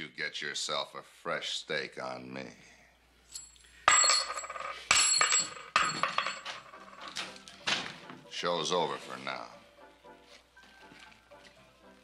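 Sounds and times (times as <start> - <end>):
metallic jingle: 3.3 - 7.2.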